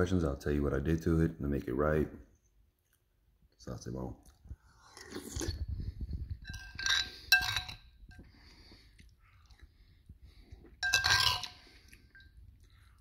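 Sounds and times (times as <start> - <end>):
metal spoon clinking on bowl: 6.4 - 8.3, 10.8 - 12.4.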